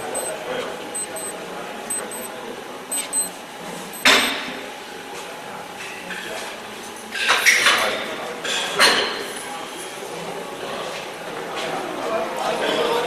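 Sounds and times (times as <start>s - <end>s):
short high blips: 0.0s - 0.3s, 1.0s - 1.3s, 1.9s - 2.3s, 2.9s - 3.3s, 4.0s - 4.3s.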